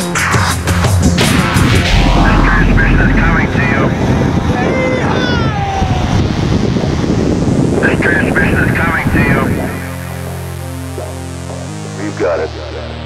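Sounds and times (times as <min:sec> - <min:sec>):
wind buffeting microphone: 0:01.6 - 0:07.9.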